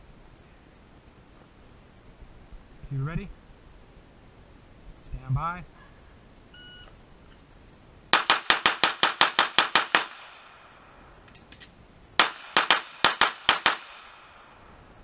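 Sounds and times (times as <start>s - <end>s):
pistol shots: 8.1s - 10.6s, 12.2s - 14.4s.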